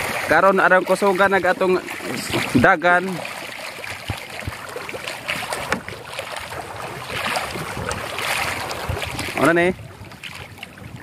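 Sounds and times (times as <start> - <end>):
paddles stroking through water: 0.0 - 11.0
water swishing and splashing: 0.0 - 11.0.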